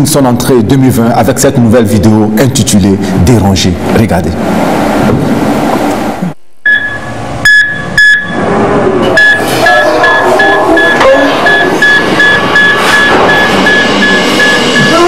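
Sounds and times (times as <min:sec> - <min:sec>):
patient monitor beeping: 0:06.6 - 0:08.5, 0:09.1 - 0:15.0.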